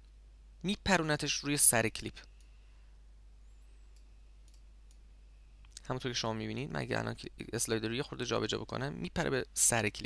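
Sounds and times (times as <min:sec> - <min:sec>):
low steady hum: 0:00.0 - 0:10.0
computer mouse clicks: 0:03.9 - 0:05.0.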